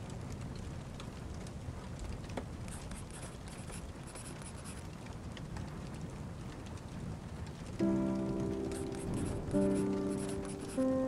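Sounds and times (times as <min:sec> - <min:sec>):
rain falling on windows: 0:00.0 - 0:11.0
soft instrumental music: 0:07.8 - 0:11.0.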